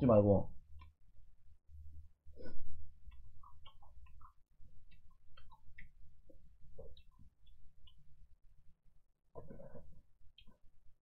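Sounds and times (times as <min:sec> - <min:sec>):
person chewing and eating: 0:02.0 - 0:11.0.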